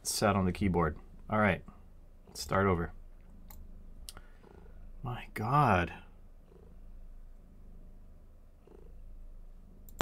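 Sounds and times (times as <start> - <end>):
cat purring: 0.9 - 5.1, 5.9 - 10.0.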